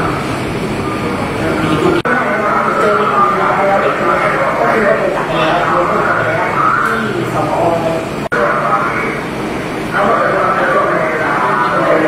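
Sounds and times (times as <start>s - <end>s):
person speaking: 0.8s - 9.2s.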